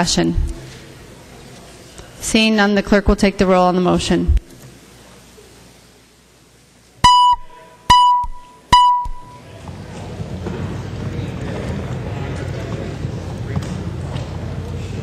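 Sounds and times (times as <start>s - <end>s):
murmur of voices: 9.3s - 15.0s.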